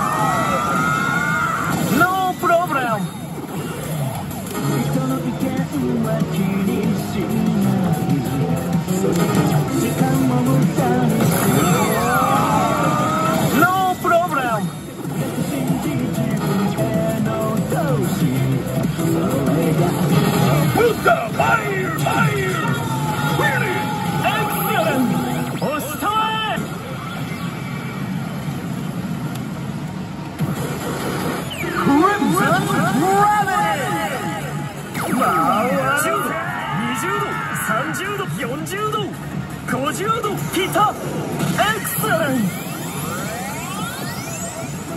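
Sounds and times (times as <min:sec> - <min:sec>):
slot machine music: 0:01.7 - 0:27.5, 0:30.4 - 0:36.4, 0:39.1 - 0:44.9
character voice lines: 0:31.7 - 0:38.4
rising electronic tones: 0:40.4 - 0:44.9.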